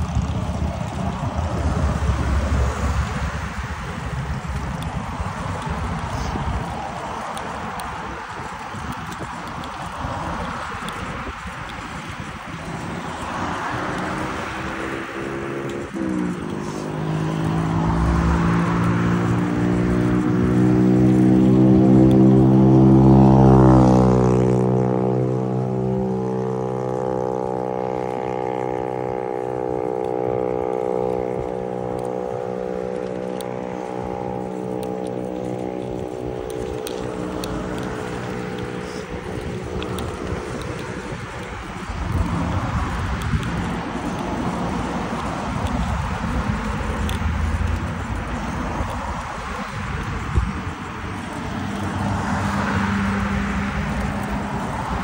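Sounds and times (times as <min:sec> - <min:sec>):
wind noise on microphone: 0:00.0 - 0:55.0
vehicle engine passing by: 0:12.2 - 0:55.0.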